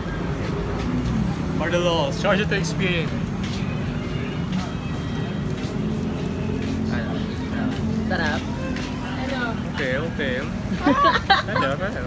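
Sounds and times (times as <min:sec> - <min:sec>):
engine hum: 0:00.0 - 0:12.0.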